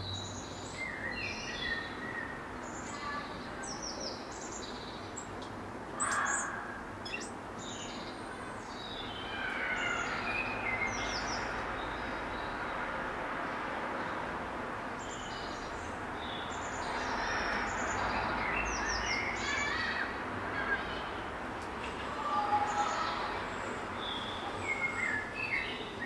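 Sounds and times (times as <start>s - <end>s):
songbirds singing: 0.0s - 26.0s.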